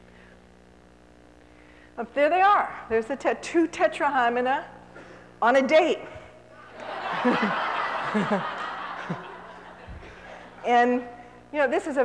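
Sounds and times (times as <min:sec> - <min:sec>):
audience laughing: 0:06.6 - 0:10.7.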